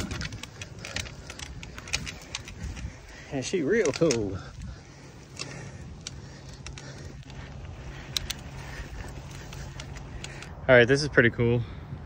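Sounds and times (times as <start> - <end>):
light clicks and rattles: 0.0 - 10.6
bike rolling on dirt trail: 0.0 - 11.6.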